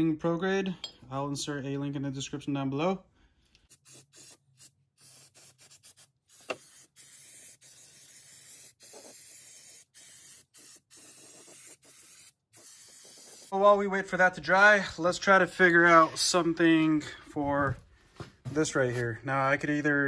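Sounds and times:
aerosol can spraying hiss: 3.7s - 13.6s.

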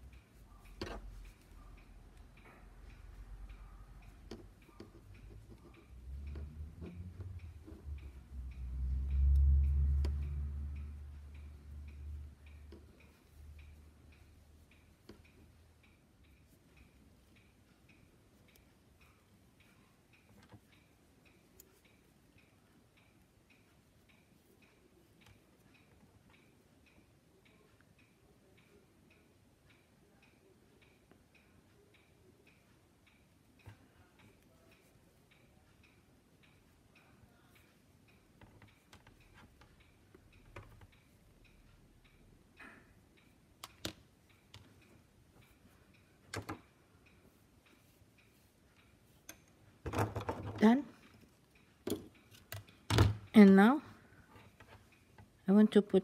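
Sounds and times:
clock ticking: 0.0s - 56.0s.

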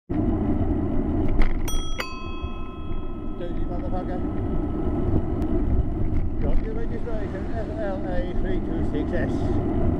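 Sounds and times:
wind and road noise: 0.1s - 9.9s
bicycle bell ringing: 1.6s - 5.1s.

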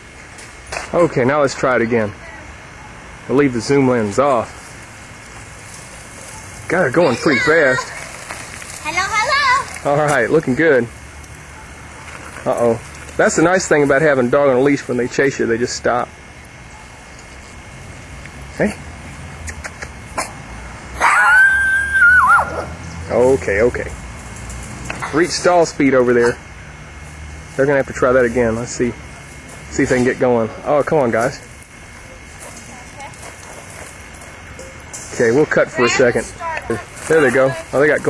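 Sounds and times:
faint hum: 0.0s - 38.0s
steady background hiss: 0.0s - 38.0s.

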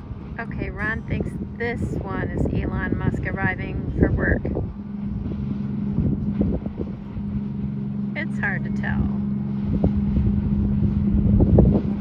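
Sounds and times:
boat engine drone: 0.0s - 12.0s
wind rumbling on microphone: 0.0s - 12.0s.

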